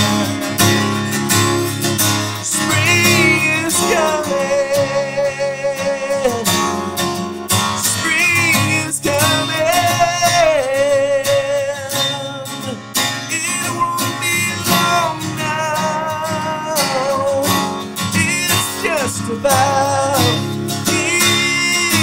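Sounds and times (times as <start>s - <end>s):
strummed acoustic guitar: 0.0s - 22.0s
man singing held notes: 2.6s - 6.4s.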